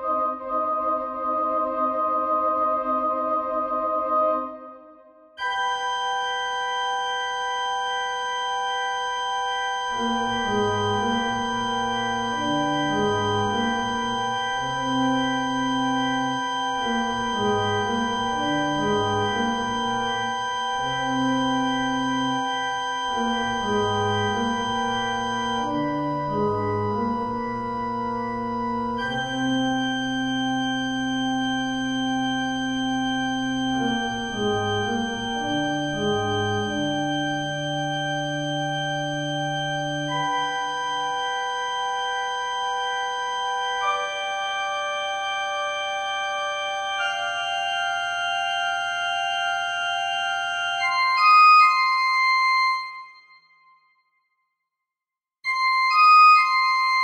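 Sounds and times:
slow organ music: 0:00.0 - 0:04.7, 0:05.4 - 0:53.3, 0:55.5 - 0:57.0.

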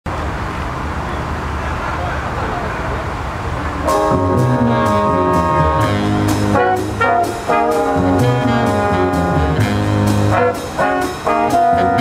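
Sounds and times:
traffic rumble: 0:00.0 - 0:12.0
indistinct talking: 0:00.9 - 0:09.2
jazz band horns: 0:03.8 - 0:12.0.

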